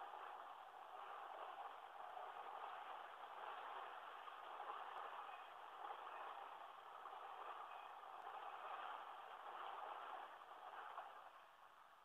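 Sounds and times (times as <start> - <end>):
freight train cars rolling: 0.0 - 11.9.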